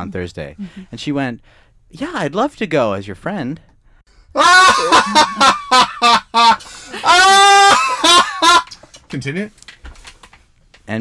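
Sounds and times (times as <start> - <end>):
high-pitched honking laughter: 4.4 - 8.7
long whoop: 7.0 - 8.1.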